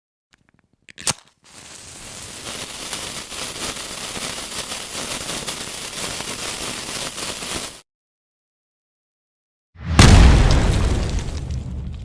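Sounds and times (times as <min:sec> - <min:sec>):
burning fuse crackling fizz: 0:01.4 - 0:07.8.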